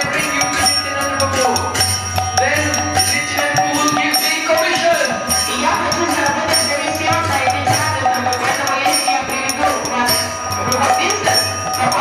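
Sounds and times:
hand cymbals ringing: 0:00.0 - 0:12.0.

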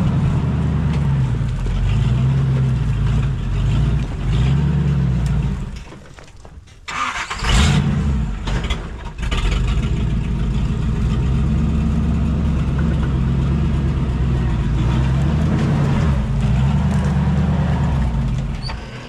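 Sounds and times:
off-road engine revving: 0:00.0 - 0:05.8, 0:06.9 - 0:19.0.

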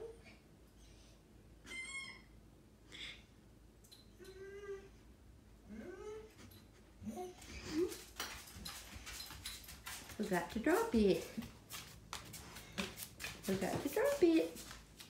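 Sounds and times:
dog whining: 0:00.8 - 0:02.4, 0:04.1 - 0:05.1
dog claws clicking on floor: 0:07.6 - 0:15.0.

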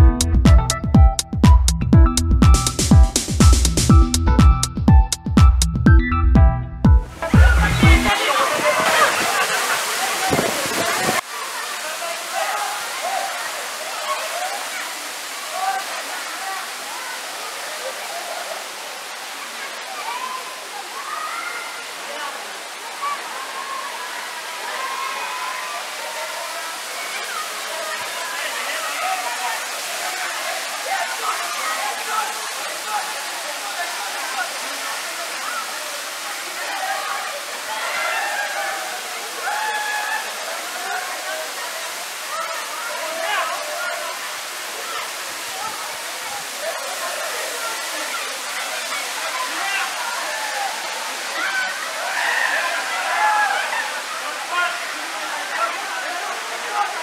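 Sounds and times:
crowd chattering and calling out: 0:07.0 - 0:57.0
waterfall rushing into pool: 0:07.0 - 0:57.0.

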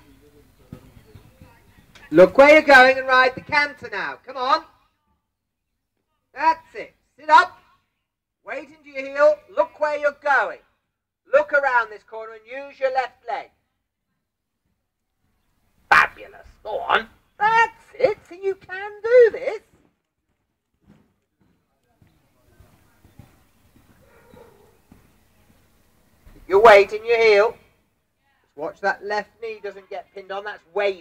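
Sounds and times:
faint distant voice: 0:00.0 - 0:02.1, 0:21.3 - 0:26.4
person speaking: 0:15.9 - 0:19.7.

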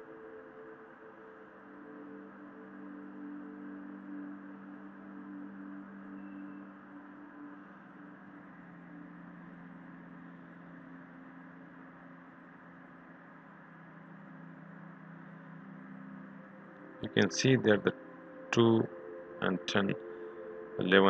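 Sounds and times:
low drone: 0:04.9 - 0:21.0.

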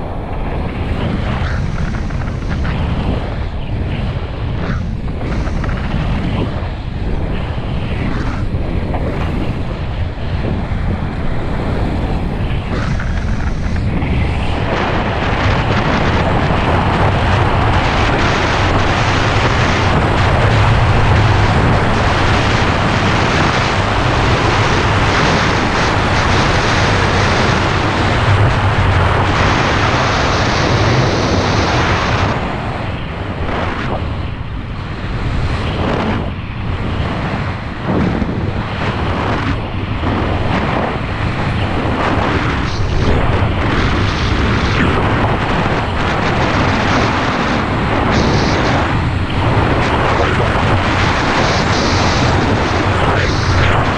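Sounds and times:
wind buffeting microphone: 0:00.0 - 0:53.9.

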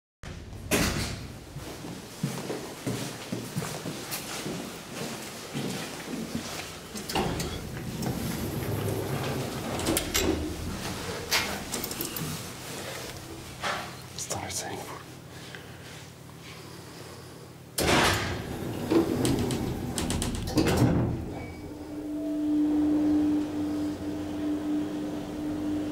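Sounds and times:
elevator low hum: 0:06.1 - 0:25.9
elevator door sliding: 0:06.9 - 0:14.0, 0:17.8 - 0:25.9
elevator knocks and clicks: 0:17.8 - 0:21.4.

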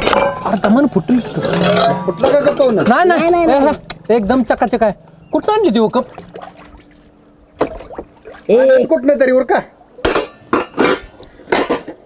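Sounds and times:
steel dishes clattering: 0:00.0 - 0:02.9, 0:10.0 - 0:12.0.

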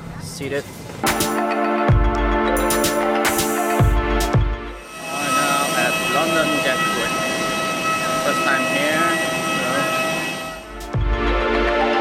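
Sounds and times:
music track: 0:01.0 - 0:12.0
jet turbine whine: 0:03.2 - 0:11.0.

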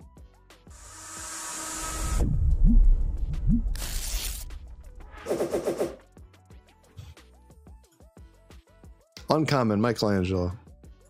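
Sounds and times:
swelling whoosh: 0:00.8 - 0:05.7
background music: 0:01.8 - 0:11.0.

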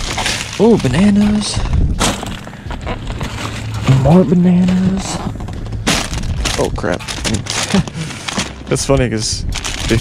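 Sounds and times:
plastic bags crinkling: 0:00.0 - 0:03.8, 0:05.6 - 0:10.0
low steady hum: 0:00.0 - 0:08.7.

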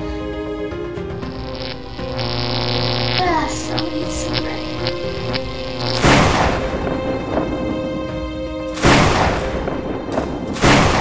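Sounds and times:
sustained background music tones: 0:00.0 - 0:11.0.

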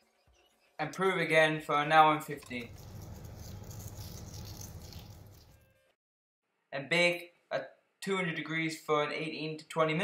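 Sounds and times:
salt flakes pattering on dough: 0:02.5 - 0:05.6.

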